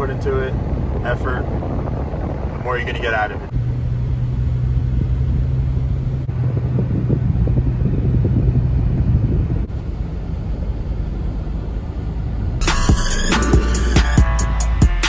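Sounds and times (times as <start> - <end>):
car engine and road noise: 0.0 - 15.0
low hum: 0.1 - 15.0
music with drums: 12.6 - 15.0.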